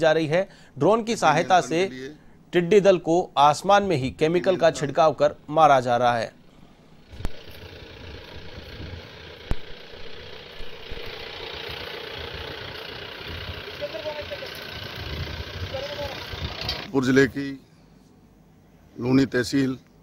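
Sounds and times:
constant hiss: 0:00.0 - 0:20.0
engine running steadily: 0:06.5 - 0:16.9.

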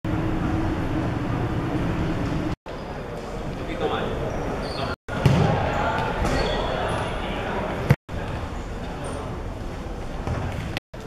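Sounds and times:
indistinct voices echoing: 0:03.0 - 0:09.4
ball thudding on court floor: 0:05.2 - 0:05.6.

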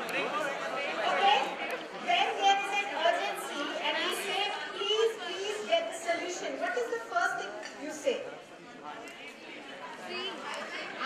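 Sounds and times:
voices talking over one another: 0:00.0 - 0:08.2.

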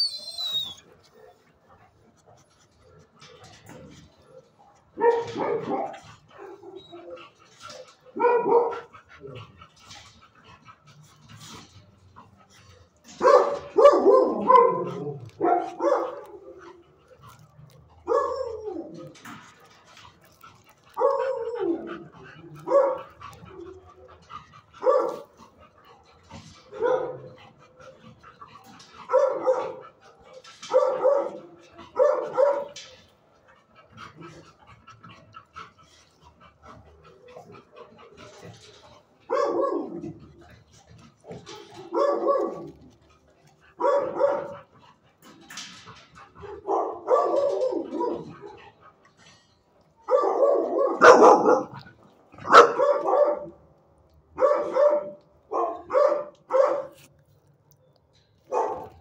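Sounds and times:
dog barking: 0:05.0 - 0:06.8, 0:08.2 - 0:08.9, 0:13.2 - 0:16.4, 0:18.1 - 0:18.7, 0:20.9 - 0:21.7, 0:22.6 - 0:23.0, 0:24.8 - 0:25.2, 0:26.8 - 0:27.2, 0:29.1 - 0:29.8, 0:30.7 - 0:31.4, 0:32.0 - 0:32.7, 0:39.3 - 0:40.0, 0:41.8 - 0:42.7, 0:43.8 - 0:44.6, 0:46.5 - 0:48.2, 0:50.1 - 0:51.8, 0:52.4 - 0:53.6, 0:54.4 - 0:57.0, 0:58.5 - 0:59.0.

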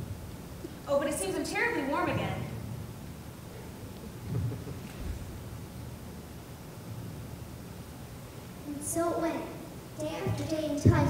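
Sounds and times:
low auditorium room rumble: 0:00.0 - 0:11.0
soft low thumps: 0:04.2 - 0:05.4.

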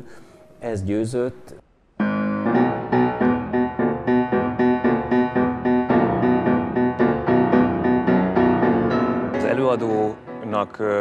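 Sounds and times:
grand piano playing fast notes: 0:02.0 - 0:11.0.

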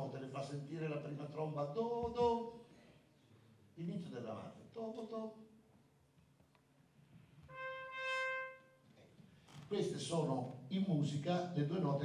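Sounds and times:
solo trumpet notes: 0:07.4 - 0:08.8.

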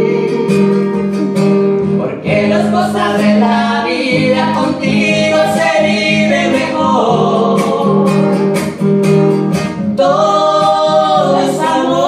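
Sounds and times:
man and woman singing: 0:00.0 - 0:01.0, 0:02.0 - 0:08.5, 0:10.0 - 0:12.0.

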